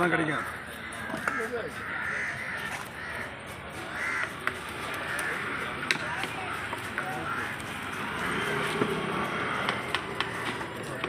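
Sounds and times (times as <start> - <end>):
crows cawing: 0.0 - 11.0.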